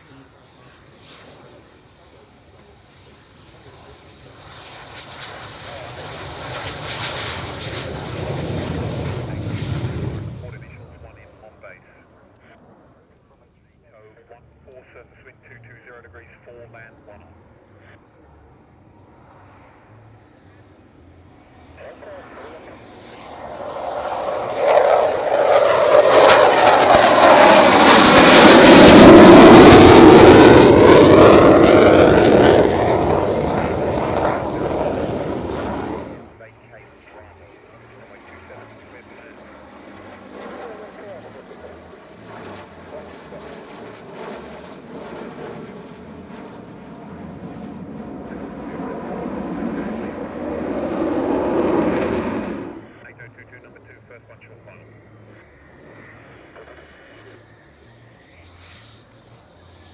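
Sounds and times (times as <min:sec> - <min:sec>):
fighter jet passing overhead: 0:00.0 - 0:13.1, 0:17.5 - 0:59.9
formation of jets: 0:00.0 - 0:59.9.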